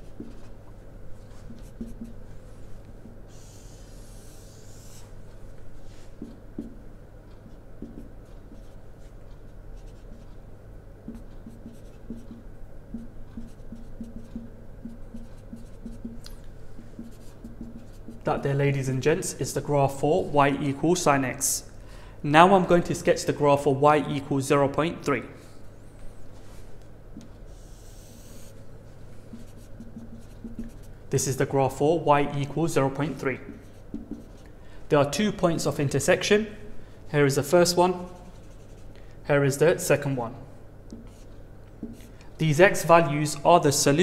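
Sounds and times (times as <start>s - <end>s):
steady low hum: 0.0s - 44.0s
marker squeaking on whiteboard: 1.5s - 2.3s, 3.3s - 5.2s, 11.1s - 18.4s, 27.2s - 28.6s, 29.3s - 31.3s, 33.1s - 34.5s, 40.9s - 42.1s.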